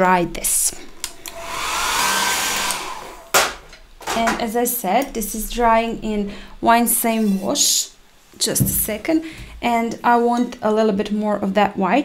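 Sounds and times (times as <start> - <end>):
hair dryer blowing: 1.0 - 3.5.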